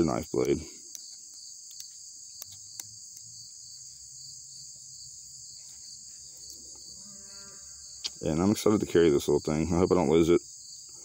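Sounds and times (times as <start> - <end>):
insects chirping in grass: 0.0 - 11.0.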